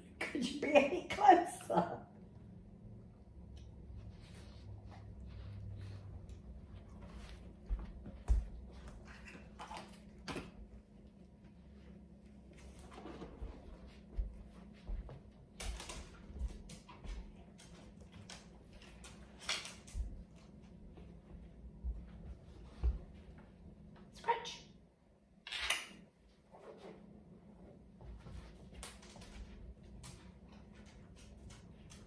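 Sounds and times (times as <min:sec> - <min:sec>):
light thuds and taps on rug: 0:07.1 - 0:08.9.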